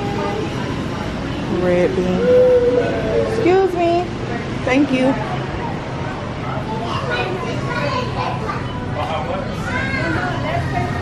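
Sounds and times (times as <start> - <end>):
chatter of shoppers' voices: 0.0 - 11.0.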